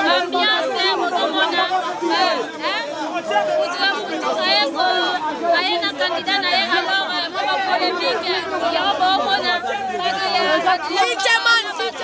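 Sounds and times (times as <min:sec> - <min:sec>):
woman speaking animatedly: 0:00.0 - 0:02.8, 0:03.6 - 0:12.0
crowd chattering: 0:00.0 - 0:12.0.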